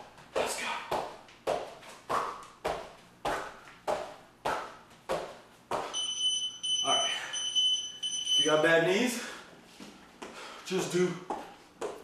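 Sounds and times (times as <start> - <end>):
feet landing on hardwood floor: 0.9 - 6.0.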